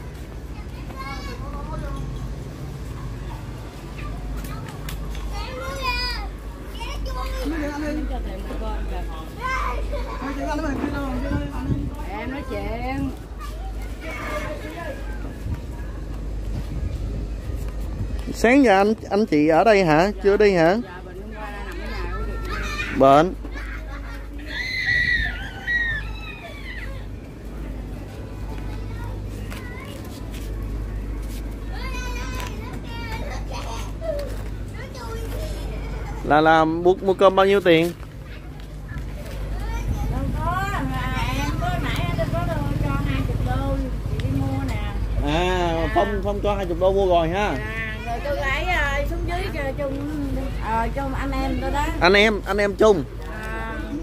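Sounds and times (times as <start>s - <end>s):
children calling and shouting: 0.0s - 54.0s
low street rumble: 0.0s - 54.0s.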